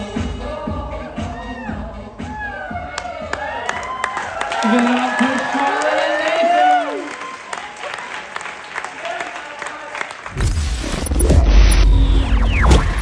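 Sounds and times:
audience clapping and cheering: 0:02.5 - 0:10.5.

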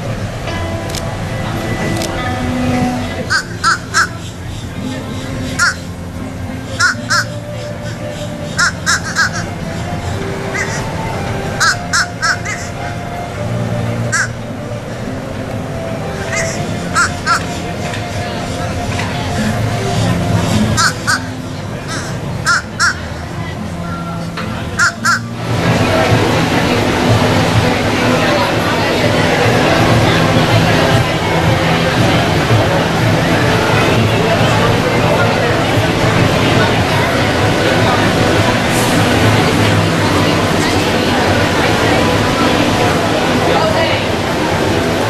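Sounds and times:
background music: 0:00.0 - 0:45.0
voices: 0:00.0 - 0:45.0
bird calling harshly: 0:03.2 - 0:11.0, 0:11.6 - 0:12.8, 0:14.1 - 0:14.5, 0:16.3 - 0:17.7, 0:20.4 - 0:23.4, 0:24.8 - 0:25.4
crow cawing: 0:03.3 - 0:04.3, 0:05.6 - 0:05.8, 0:06.8 - 0:09.5, 0:10.5 - 0:10.9, 0:11.6 - 0:12.7, 0:14.1 - 0:14.4, 0:16.3 - 0:17.5, 0:20.8 - 0:23.0, 0:24.8 - 0:25.2.

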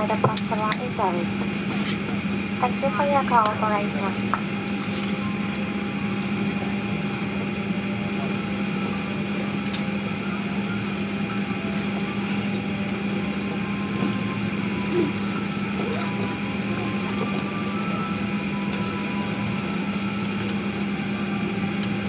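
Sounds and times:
aircraft cabin hum: 0:00.0 - 0:22.0.

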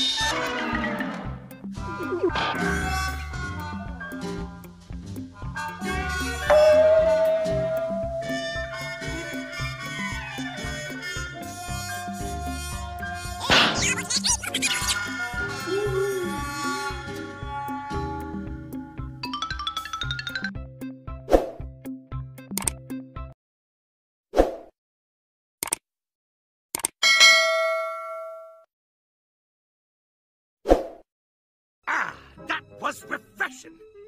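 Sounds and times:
cartoon music with bouncing bass: 0:00.0 - 0:18.4, 0:19.0 - 0:23.2
notification bell ding: 0:06.5 - 0:08.1, 0:19.2 - 0:20.6, 0:27.0 - 0:28.7
zinging sound effect: 0:13.7 - 0:15.0.

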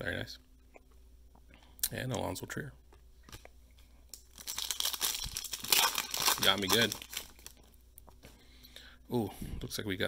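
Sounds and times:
foil wrapper crinkling and tearing: 0:04.1 - 0:07.6.

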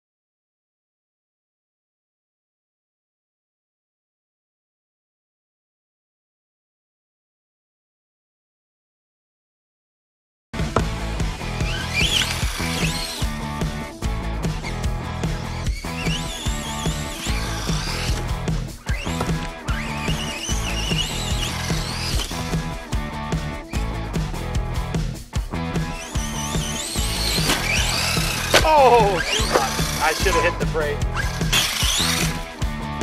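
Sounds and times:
music: 0:10.6 - 0:33.0
electric motor whining: 0:11.4 - 0:13.8, 0:15.4 - 0:22.7, 0:25.8 - 0:32.7.

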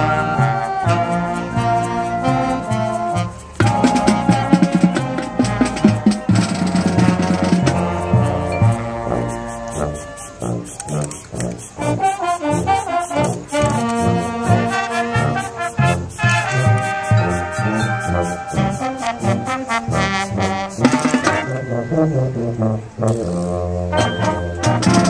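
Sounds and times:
marching band playing: 0:00.0 - 0:25.0.

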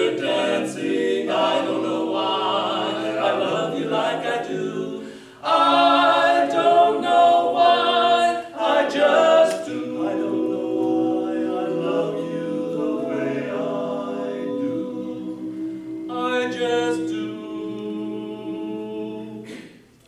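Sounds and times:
men's barbershop quartet singing: 0:00.0 - 0:19.7.

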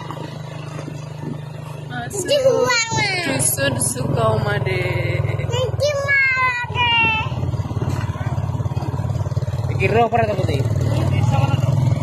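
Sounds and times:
small motorcycle engine running: 0:00.0 - 0:12.0.

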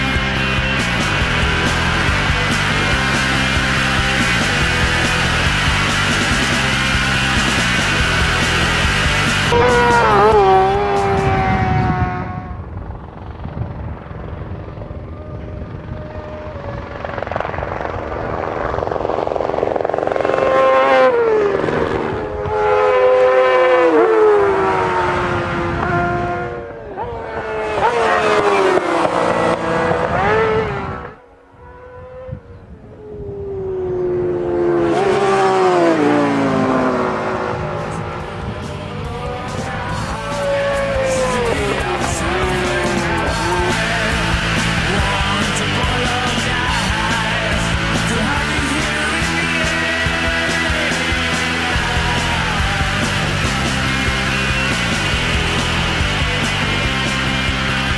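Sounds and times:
racing motorcycles passing by: 0:00.0 - 0:57.9.

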